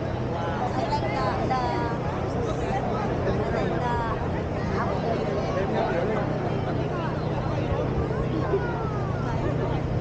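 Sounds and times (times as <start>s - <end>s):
crowd chatter: 0.0s - 10.0s
low engine hum: 0.0s - 10.0s.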